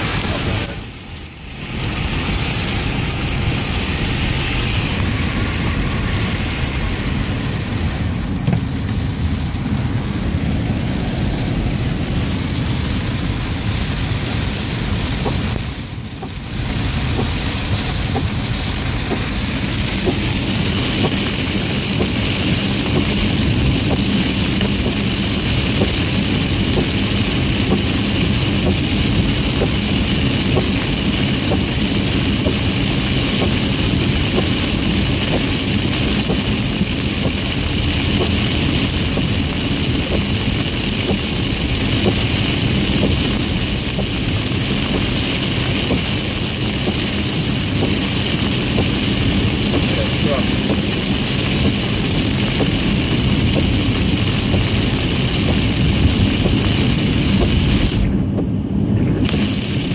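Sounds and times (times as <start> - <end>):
car engine: 0.0 - 59.9
heavy rain on car roof: 0.0 - 59.9.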